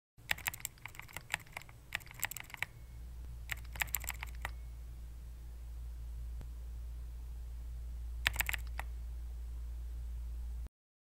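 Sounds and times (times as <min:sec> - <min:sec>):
low steady hum: 0:00.2 - 0:10.7
keyboard keys clicking: 0:00.3 - 0:02.7, 0:03.5 - 0:04.6, 0:08.2 - 0:08.9.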